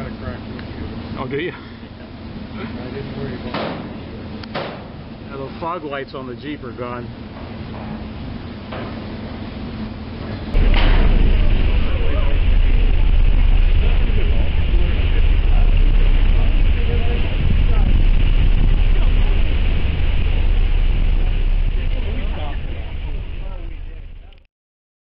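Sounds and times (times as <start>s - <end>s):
wind buffeting microphone: 10.5s - 24.4s.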